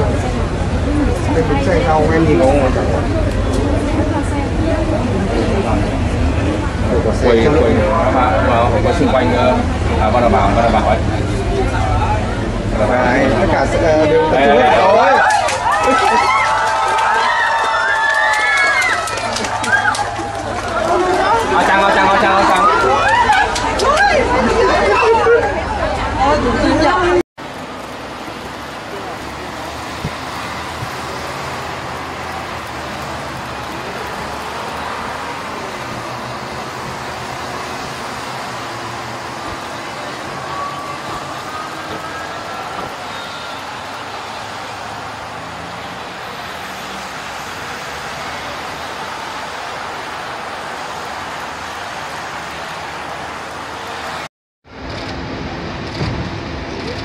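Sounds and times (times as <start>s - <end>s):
faint voices: 0.0s - 54.3s
people chattering: 0.0s - 54.3s
street traffic noise: 0.0s - 57.0s.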